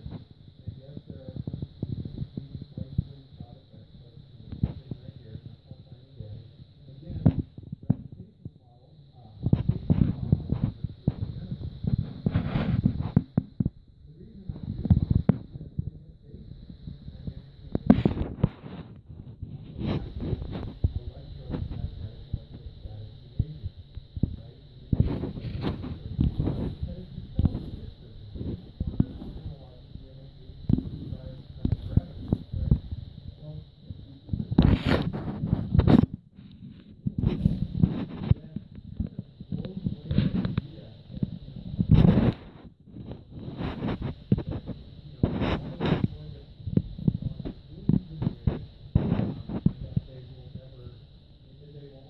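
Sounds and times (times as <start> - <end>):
low rumble on microphone: 0.0 - 52.0.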